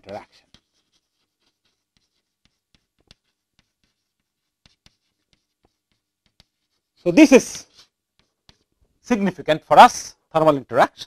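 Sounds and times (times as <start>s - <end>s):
chalk tapping and scratching on blackboard: 0.0s - 11.0s.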